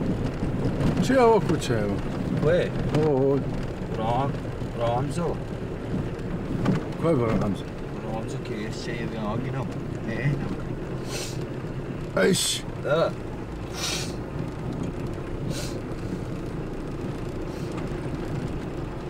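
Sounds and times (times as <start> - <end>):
car engine hum: 0.0 - 19.0
tyre and road noise: 0.0 - 19.0
short hissing bursts: 13.7 - 14.2.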